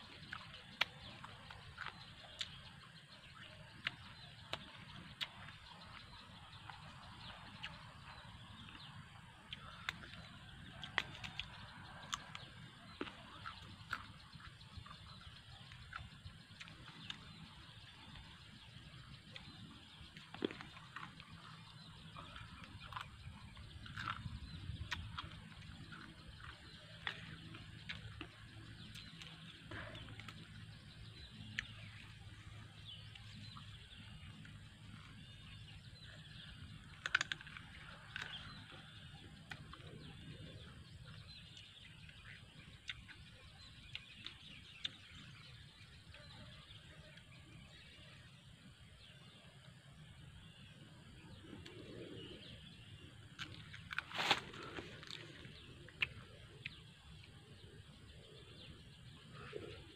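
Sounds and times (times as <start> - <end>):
birds chirping: 0.0 - 59.9.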